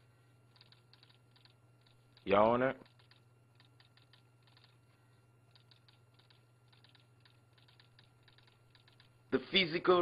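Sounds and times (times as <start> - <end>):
low room hum: 0.0 - 10.0
faint irregular clicks: 0.5 - 9.3.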